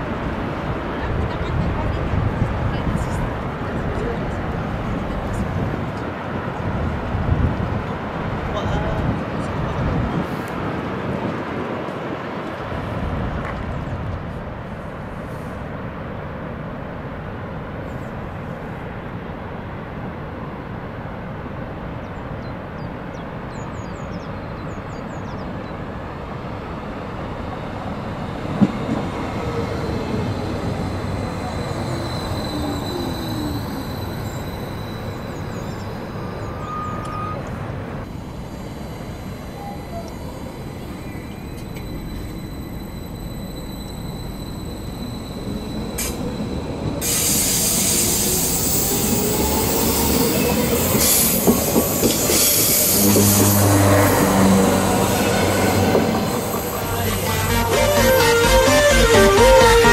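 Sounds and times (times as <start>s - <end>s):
electric train passing: 24.2s - 59.9s
train wheels squealing: 27.6s - 59.9s.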